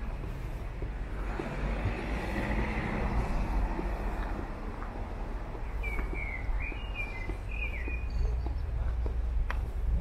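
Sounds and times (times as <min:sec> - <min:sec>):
faint footsteps: 0:00.0 - 0:10.0
small bird chirping: 0:05.6 - 0:08.8.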